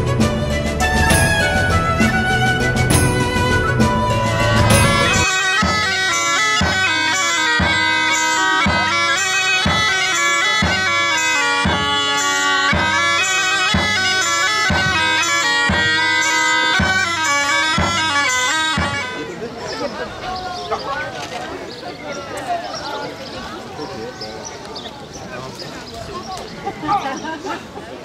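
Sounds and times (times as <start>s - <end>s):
bagpipes playing a lively tune: 0.0s - 20.0s
low drum thump: 1.0s - 5.9s, 14.7s - 15.0s, 15.7s - 16.0s.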